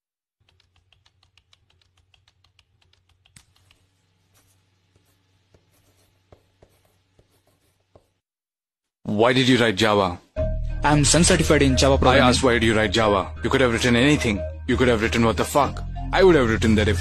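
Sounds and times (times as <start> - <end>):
laptop keyboard typing: 0.4 - 3.9.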